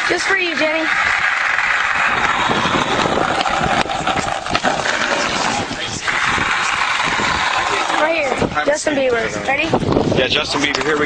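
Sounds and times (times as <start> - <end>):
skateboard wheels rolling on pavement: 0.0 - 11.0.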